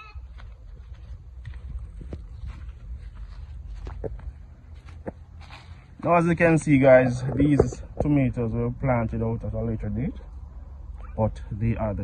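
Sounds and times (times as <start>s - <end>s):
footsteps through grass: 0.0s - 6.9s
steady low rumble: 0.3s - 12.0s.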